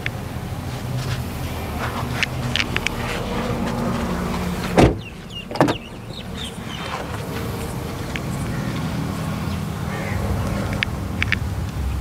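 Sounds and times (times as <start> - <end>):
faint birds chirping: 4.1 - 12.0
car door shutting: 4.3 - 6.0.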